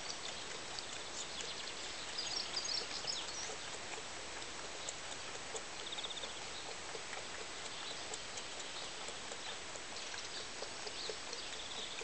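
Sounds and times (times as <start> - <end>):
lamb sucking bottle teat: 0.0 - 12.0.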